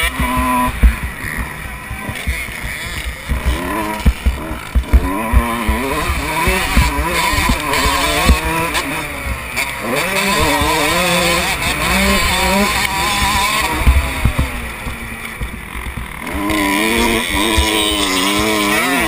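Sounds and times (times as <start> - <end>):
motocross bike engine revving: 0.0 - 19.0.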